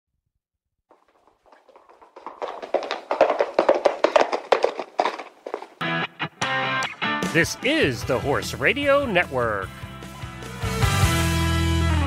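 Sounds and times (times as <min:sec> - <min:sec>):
galloping horse hoofbeats: 0:00.9 - 0:05.9.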